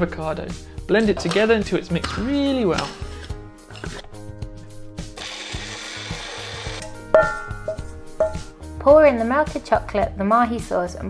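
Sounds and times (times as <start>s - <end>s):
background music: 0.0s - 11.0s
blender whirring: 5.2s - 6.9s.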